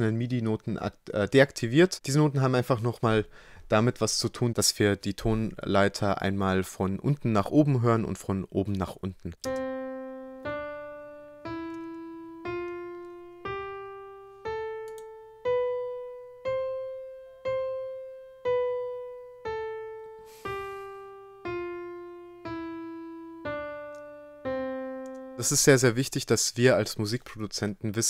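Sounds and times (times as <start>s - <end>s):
piano-like keyboard playing a scale: 9.4s - 26.1s.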